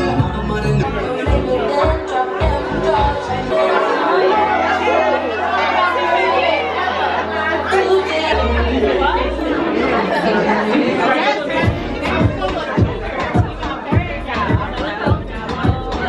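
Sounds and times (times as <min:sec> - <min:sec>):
background music with bass notes: 0:00.0 - 0:05.6, 0:11.5 - 0:16.0
party chatter: 0:00.0 - 0:16.0.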